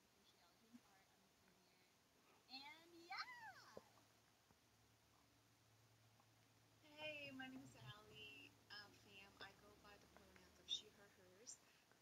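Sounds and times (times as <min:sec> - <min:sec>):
cat meowing: 0:03.1 - 0:03.8.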